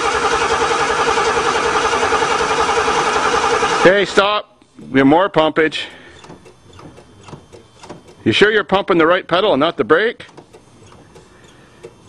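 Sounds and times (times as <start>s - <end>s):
faint mechanical clicks: 10.2s - 12.0s.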